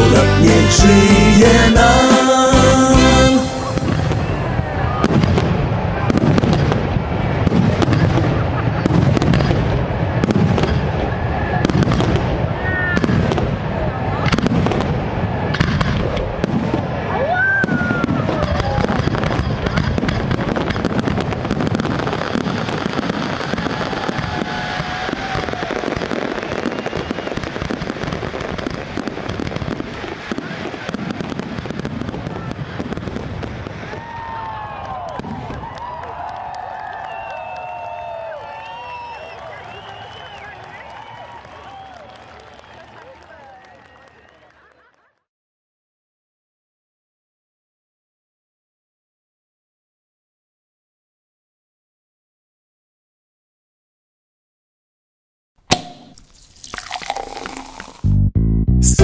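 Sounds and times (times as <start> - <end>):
crowd voices: 0.0 - 20.0
fireworks bangs and crackles: 1.7 - 44.7
low rumble: 58.1 - 59.0.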